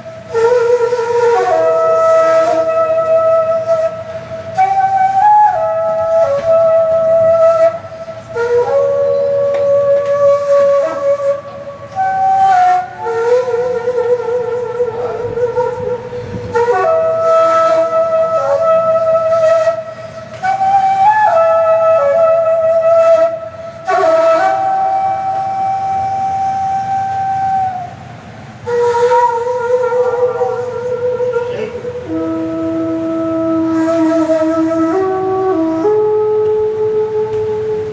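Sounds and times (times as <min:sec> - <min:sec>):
bamboo flute long note: 0:00.0 - 0:37.9.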